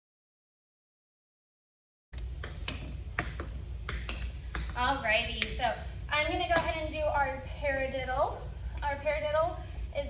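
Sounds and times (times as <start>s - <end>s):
low steady hum: 2.2s - 10.0s.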